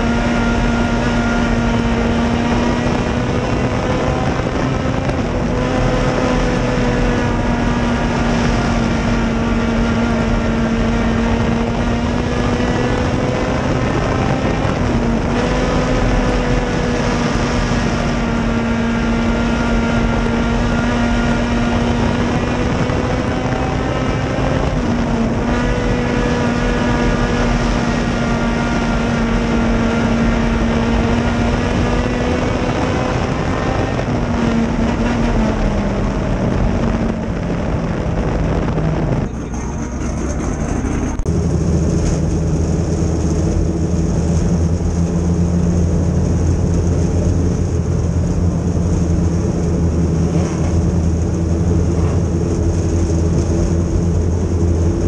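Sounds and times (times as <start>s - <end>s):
race car engine running hard: 0.0s - 55.0s
wind and road noise: 0.0s - 55.0s.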